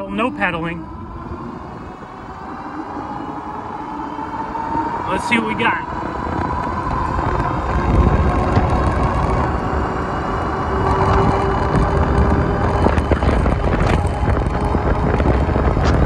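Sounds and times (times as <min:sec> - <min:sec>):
faint steady whine: 0:00.0 - 0:16.0
wind rushing over microphone: 0:00.0 - 0:16.0.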